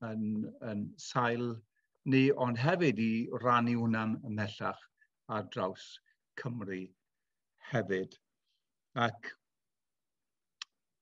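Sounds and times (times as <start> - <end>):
man speaking: 0.0 - 7.0.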